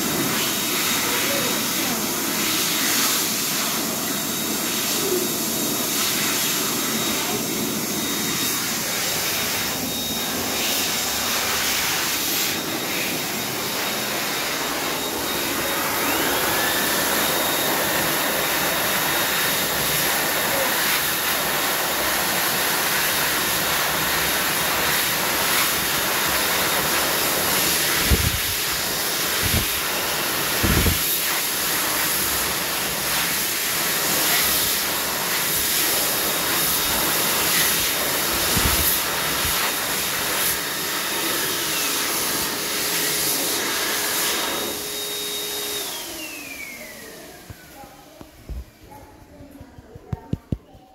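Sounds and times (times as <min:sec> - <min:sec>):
hand dryer blowing: 0:00.0 - 0:48.9.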